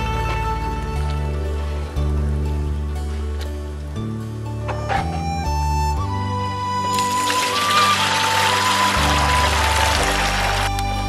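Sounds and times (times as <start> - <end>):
background music: 0.0 - 11.0
watery pulp pouring onto cloth: 6.9 - 10.7.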